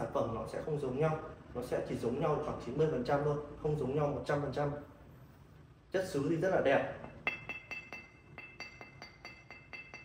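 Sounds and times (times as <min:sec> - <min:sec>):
fingers tapping porcelain vase: 0:07.1 - 0:10.0.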